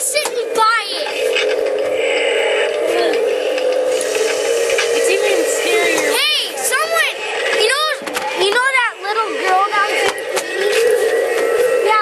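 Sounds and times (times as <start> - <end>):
steady electronic drone: 0.0 - 12.0
distorted voice-like sound: 4.1 - 12.0.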